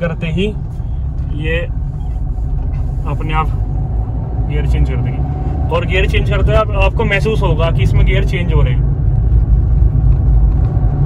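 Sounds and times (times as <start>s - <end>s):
diesel car engine droning: 0.0s - 11.0s.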